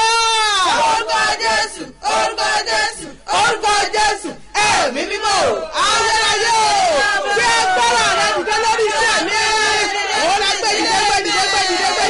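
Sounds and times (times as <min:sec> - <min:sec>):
person shouting prayer: 0:00.0 - 0:01.1, 0:03.0 - 0:12.0
voices chanting shout: 0:00.0 - 0:12.0.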